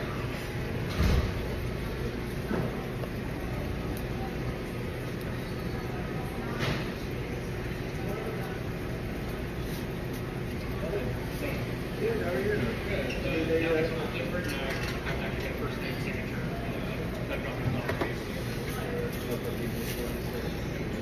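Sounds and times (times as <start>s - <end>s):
faint voices: 0.0s - 21.0s
restaurant room hum: 0.0s - 21.0s.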